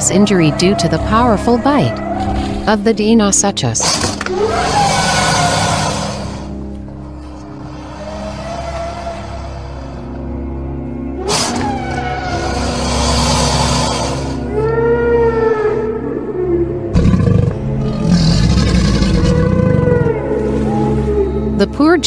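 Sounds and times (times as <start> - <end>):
sustained background music: 0.0 - 22.0
loud rough dinosaur roar: 4.2 - 6.5, 7.6 - 10.2, 11.2 - 15.9, 16.9 - 20.7
wavering moaning dinosaur call: 4.3 - 6.5, 7.6 - 10.2, 11.2 - 21.7.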